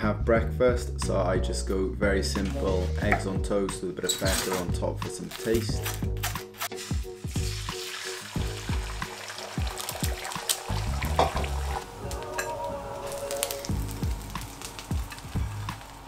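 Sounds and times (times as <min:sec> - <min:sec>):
background music with steady beat: 0:00.0 - 0:16.0
eggs sizzling in a frying pan: 0:06.8 - 0:16.0.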